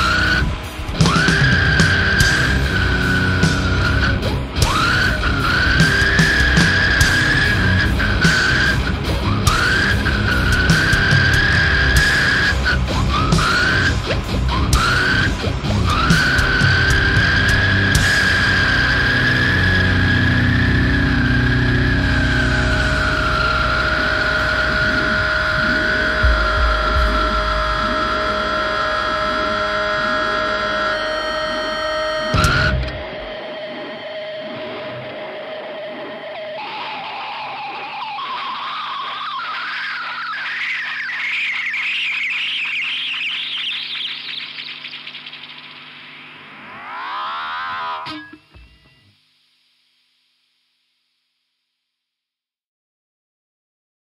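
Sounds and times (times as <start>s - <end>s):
high wavering held tone: 0.0s - 35.4s, 36.4s - 49.1s
distorted rock band chord: 0.0s - 49.0s
electronic drone rising in pitch: 0.0s - 49.0s.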